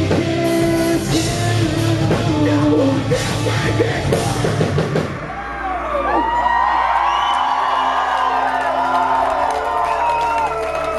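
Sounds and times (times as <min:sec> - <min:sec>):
audience cheering and whooping: 0:05.0 - 0:10.9.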